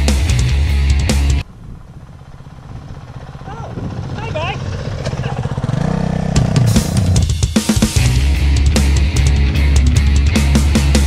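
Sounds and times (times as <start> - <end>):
music: 0.0 - 1.4, 6.4 - 11.0
motorcycle engine approaching: 0.0 - 11.0.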